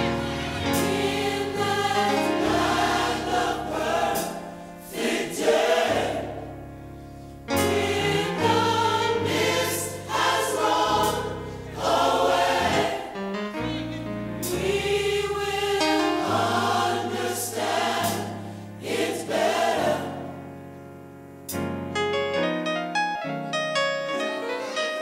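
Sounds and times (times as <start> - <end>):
gospel choir singing in harmony: 0.0 - 20.8
instrumental backing: 0.0 - 25.0.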